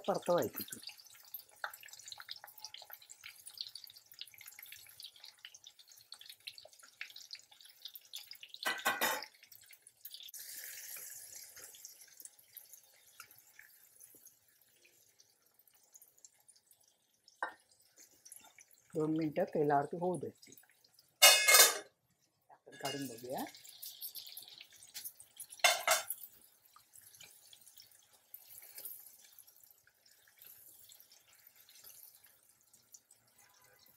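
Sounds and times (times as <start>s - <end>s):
food sizzling in hot oil: 0.0s - 33.9s.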